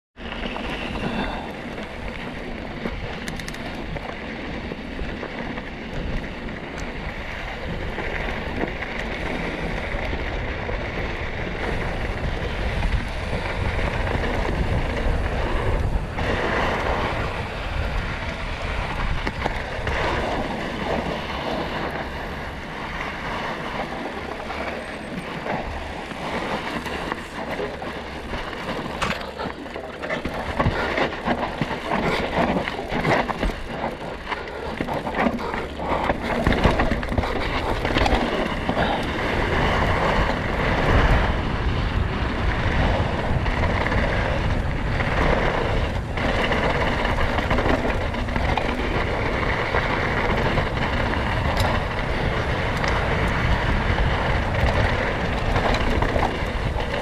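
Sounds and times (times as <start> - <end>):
bike rattling over bumps: 0.2 - 57.0
tyre noise on dirt: 0.2 - 57.0
wind rush over microphone: 0.2 - 57.0.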